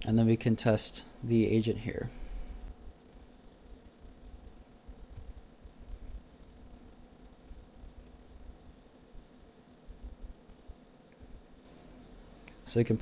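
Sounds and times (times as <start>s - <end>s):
low hum: 0.0s - 13.0s
typing on a keyboard: 2.8s - 8.9s, 9.9s - 10.6s.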